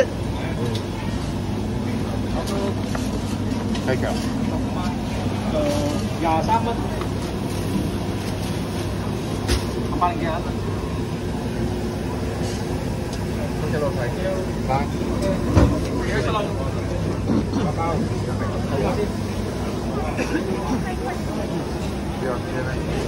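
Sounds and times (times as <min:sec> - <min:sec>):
low rumble of traffic: 0:00.0 - 0:23.0.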